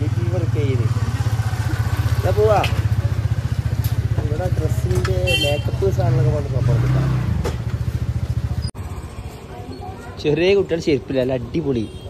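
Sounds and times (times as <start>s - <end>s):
small motorcycle engine idling: 0.0s - 6.6s, 7.6s - 9.4s.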